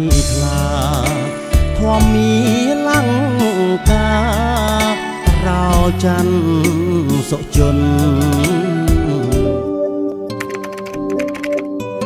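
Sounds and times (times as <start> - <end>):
background music: 0.0 - 12.0
keyboard key clicks: 10.4 - 11.7.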